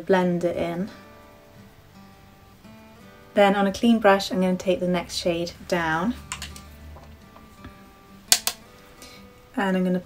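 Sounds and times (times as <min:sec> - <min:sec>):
soft background music: 0:00.0 - 0:10.0
sharp clicks: 0:08.3 - 0:08.6.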